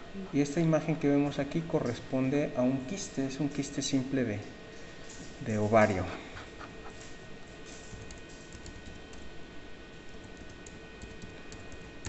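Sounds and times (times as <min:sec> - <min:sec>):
keyboard keys clicking: 0:10.2 - 0:12.0.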